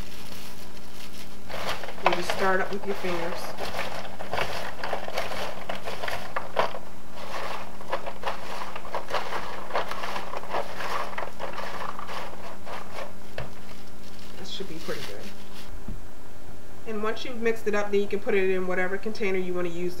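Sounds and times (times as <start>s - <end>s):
popcorn rustling in foil pan: 0.0s - 15.8s.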